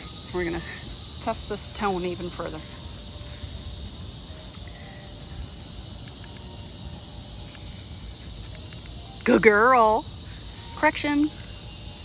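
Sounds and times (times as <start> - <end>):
high insect drone: 0.0 - 12.0.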